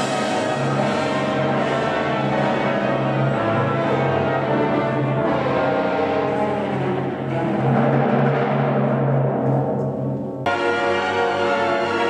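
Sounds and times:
orchestra playing: 0:00.0 - 0:12.0
timpani: 0:00.0 - 0:12.0.

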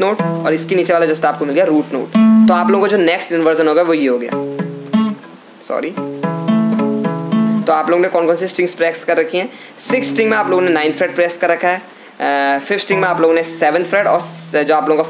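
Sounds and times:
acoustic guitar picking notes: 0:00.0 - 0:03.3, 0:04.2 - 0:08.0, 0:09.8 - 0:11.6, 0:12.9 - 0:15.0
person talking: 0:00.0 - 0:04.4, 0:05.6 - 0:06.0, 0:07.6 - 0:15.0.

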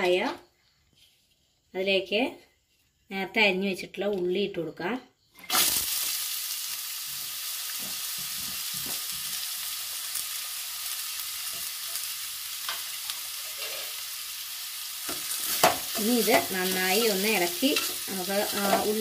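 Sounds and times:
onions sizzling in hot oil: 0:05.4 - 0:19.0.

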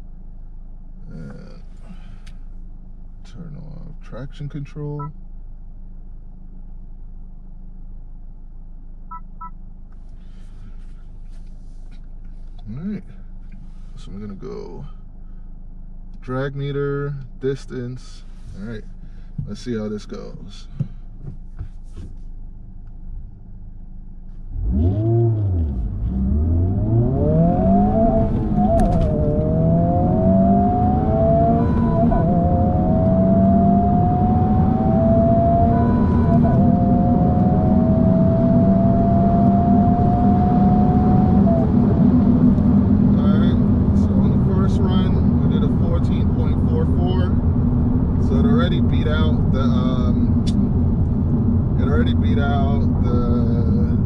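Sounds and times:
road noise: 0:00.0 - 0:54.0
car engine accelerating: 0:16.1 - 0:54.0.

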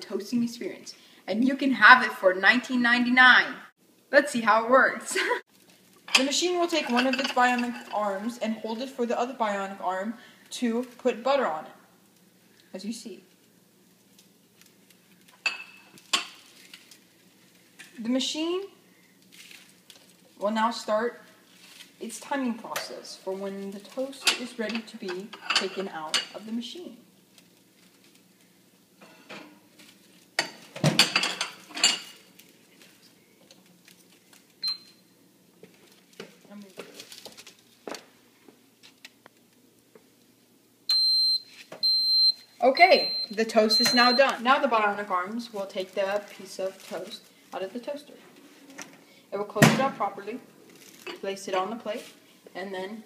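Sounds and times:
toaster oven beeping: 0:43.0 - 0:44.3
toaster oven button beep: 0:43.0 - 0:44.3.

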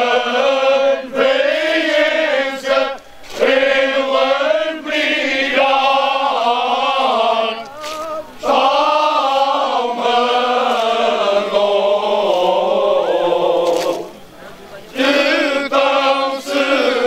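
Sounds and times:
male choir singing: 0:00.0 - 0:17.0.

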